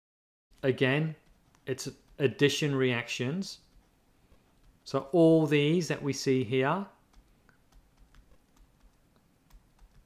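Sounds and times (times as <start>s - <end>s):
stylus tapping on tablet screen: 1.0s - 5.5s, 7.0s - 10.0s.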